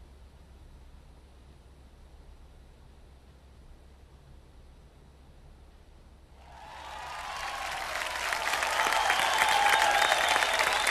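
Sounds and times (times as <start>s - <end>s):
audience applause: 6.4s - 10.9s.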